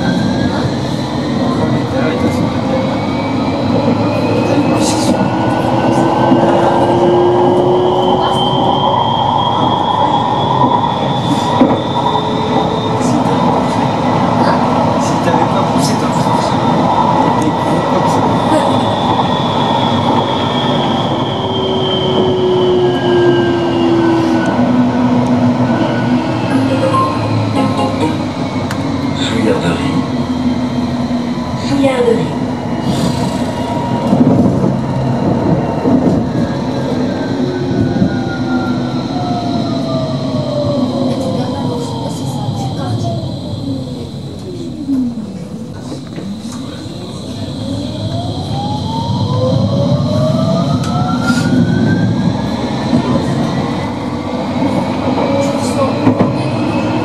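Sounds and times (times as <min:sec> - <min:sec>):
electric tram running on rails: 0:00.0 - 0:57.0.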